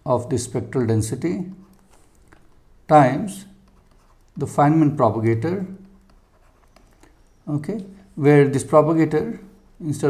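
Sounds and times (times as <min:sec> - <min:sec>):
man speaking: 0:00.0 - 0:01.6, 0:02.9 - 0:03.6, 0:04.4 - 0:05.8, 0:07.5 - 0:10.0.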